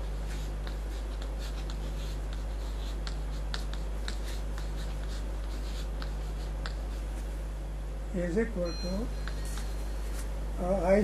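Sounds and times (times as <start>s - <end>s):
chalk scratching on chalkboard: 0.0s - 7.3s
low electrical hum: 0.0s - 11.0s.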